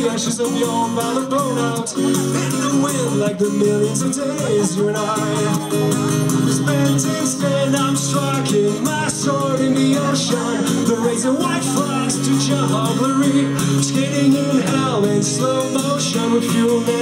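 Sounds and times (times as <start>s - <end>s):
man singing: 0.0s - 17.0s
strummed acoustic guitar: 0.0s - 17.0s.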